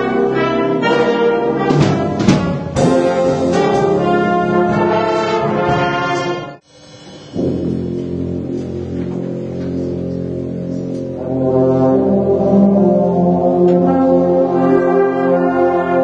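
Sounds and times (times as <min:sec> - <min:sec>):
wind band brass chords: 0:00.0 - 0:16.0.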